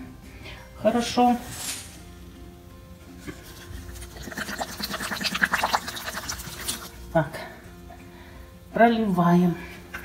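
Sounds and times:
water poured onto soil: 3.4s - 7.0s.

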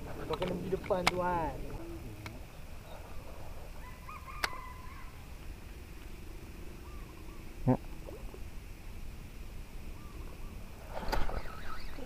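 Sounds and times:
faint bird calls: 1.7s - 9.0s, 9.8s - 12.0s.

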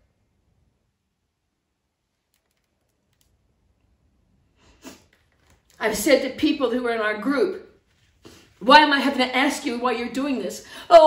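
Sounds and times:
very faint clicks: 2.2s - 3.9s.

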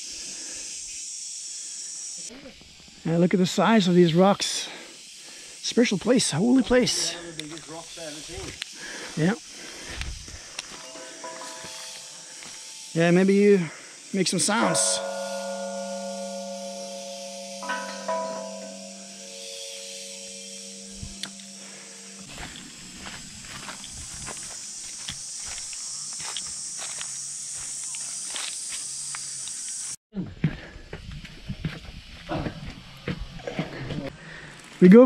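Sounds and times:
footsteps on dry leaves: 8.2s - 13.0s, 20.1s - 28.9s
metal temple bell ringing: 10.7s - 23.1s.

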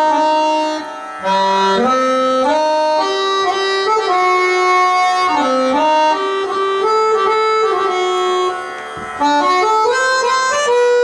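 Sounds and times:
harmonium playing chords: 0.0s - 11.0s.

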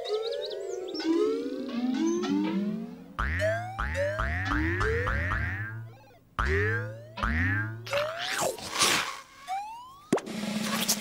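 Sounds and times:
cartoon boing sound effects: 1.9s - 8.5s.

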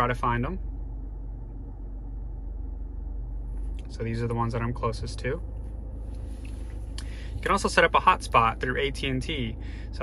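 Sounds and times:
car engine humming inside cabin: 0.0s - 10.0s.

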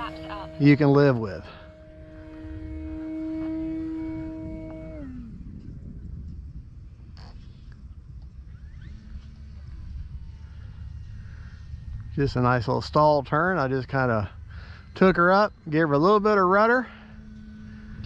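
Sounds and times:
low rumble: 0.0s - 18.0s
model plane motor whine: 0.0s - 18.0s.

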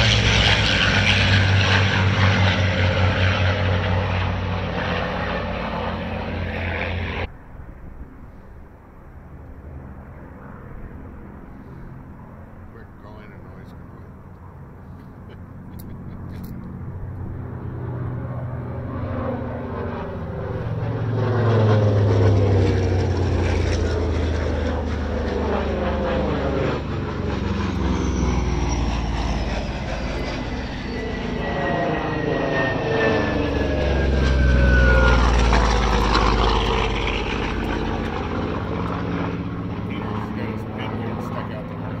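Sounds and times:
propeller planes flying by: 0.0s - 42.0s.

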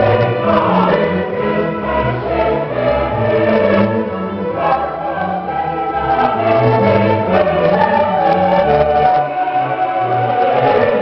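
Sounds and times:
choir singing: 0.0s - 11.0s
string orchestra: 0.0s - 11.0s.

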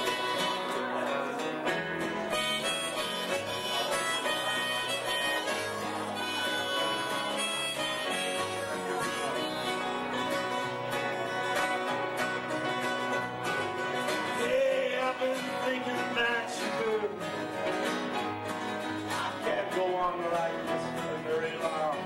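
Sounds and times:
strummed acoustic guitar: 0.0s - 22.0s.

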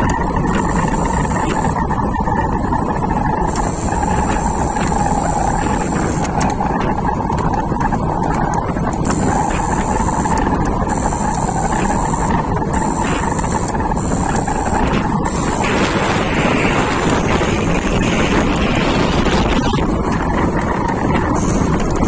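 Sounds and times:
electric motor whine: 0.0s - 22.0s
wind and tyre noise: 0.0s - 22.0s.

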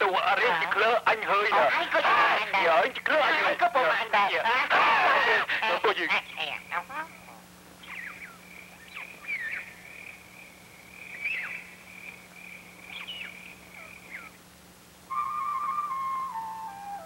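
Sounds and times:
faint low hum: 0.0s - 17.0s
birds chirping: 5.6s - 14.5s
high whistle-like drone: 15.1s - 17.0s.

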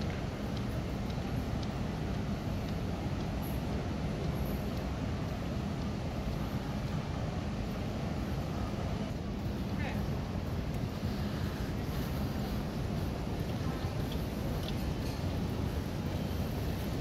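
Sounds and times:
faint steady tone: 0.0s - 17.0s
low hum of terminal hall: 0.0s - 17.0s
murmur of distant voices: 0.0s - 17.0s.

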